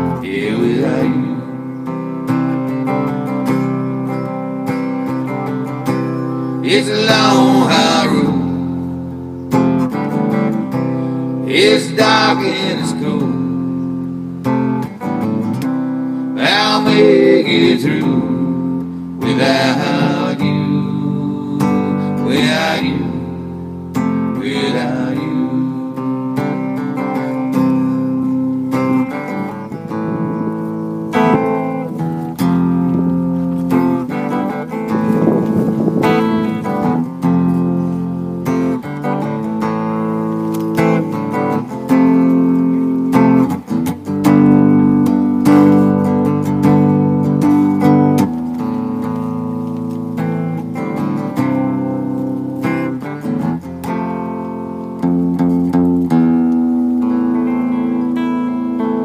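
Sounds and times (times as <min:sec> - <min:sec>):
electric guitar chords: 0:00.0 - 0:59.0.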